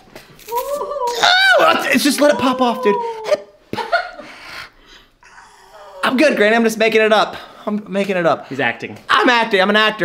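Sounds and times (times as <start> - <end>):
man whimpering: 0.6 - 3.6, 5.2 - 6.4.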